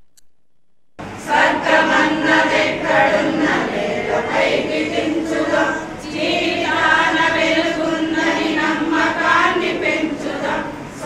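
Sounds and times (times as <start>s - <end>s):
women singing in unison: 1.2s - 11.0s.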